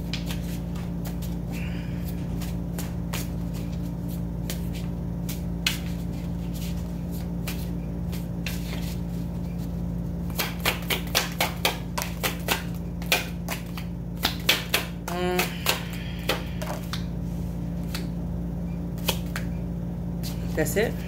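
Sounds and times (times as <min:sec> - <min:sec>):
cards being shuffled: 0:00.0 - 0:01.4, 0:02.1 - 0:17.1, 0:19.0 - 0:19.5
steady low hum: 0:00.0 - 0:21.0.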